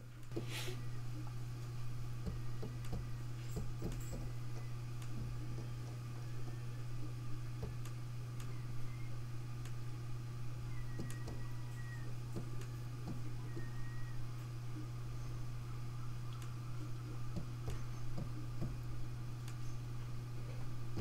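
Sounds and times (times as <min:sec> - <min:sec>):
fan and drives humming: 0:00.0 - 0:21.0
faint hard drive clicks: 0:01.2 - 0:09.8, 0:10.7 - 0:14.9, 0:15.9 - 0:19.8.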